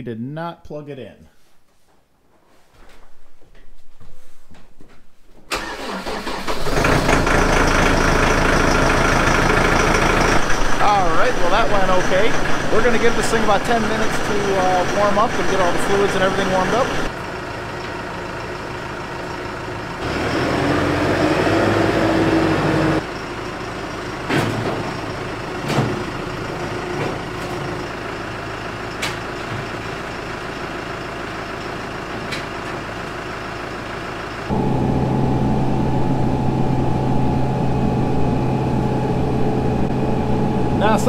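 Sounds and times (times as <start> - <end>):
diesel tractor idling: 5.5 - 41.0.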